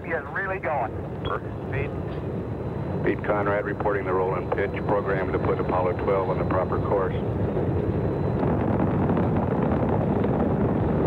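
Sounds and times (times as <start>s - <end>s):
rocket engines rumbling: 0.0s - 11.0s.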